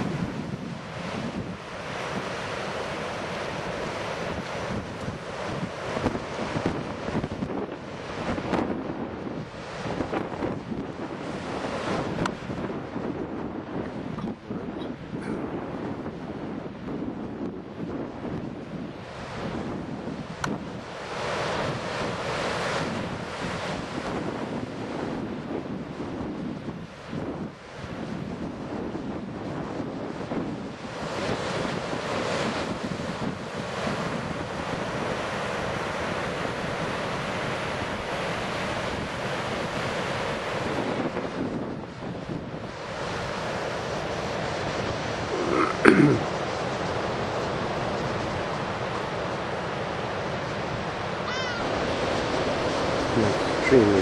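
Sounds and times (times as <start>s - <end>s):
surf breaking on rocky shore: 0.0s - 54.0s
wind buffeting microphone: 0.0s - 54.0s.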